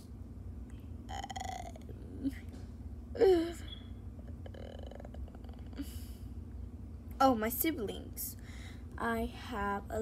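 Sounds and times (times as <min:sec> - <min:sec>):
child burping: 0:01.1 - 0:01.9, 0:04.4 - 0:05.9.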